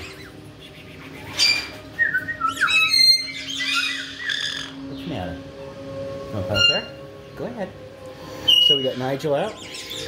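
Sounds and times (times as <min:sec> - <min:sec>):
parrot squawk: 0:00.0 - 0:04.8
parrot whistles and chirps: 0:00.0 - 0:04.8, 0:08.4 - 0:09.0.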